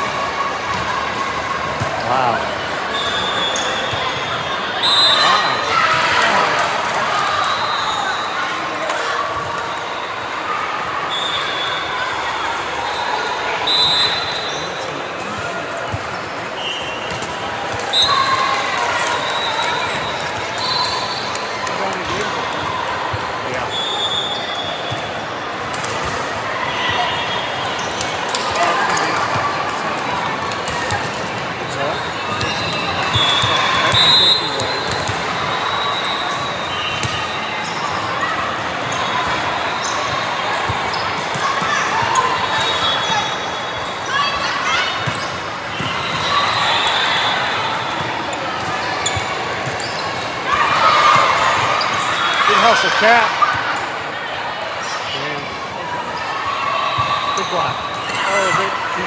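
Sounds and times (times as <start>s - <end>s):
crowd cheering: 0.0s - 59.0s
spectators shouting: 26.2s - 59.0s
players calling out: 26.3s - 54.2s
sneaker squeaks on wooden court: 31.9s - 38.2s, 40.8s - 46.5s, 47.8s - 52.9s.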